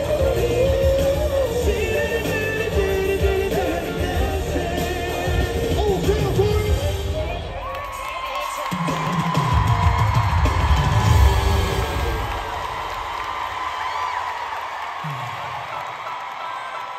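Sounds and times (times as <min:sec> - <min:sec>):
loud amplified music: 0:00.0 - 0:13.6
crowd cheering and whooping: 0:07.5 - 0:16.9.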